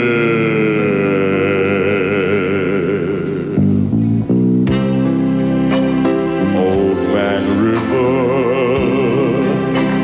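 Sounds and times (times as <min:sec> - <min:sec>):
man singing a long note: 0:00.0 - 0:03.8, 0:06.4 - 0:10.0.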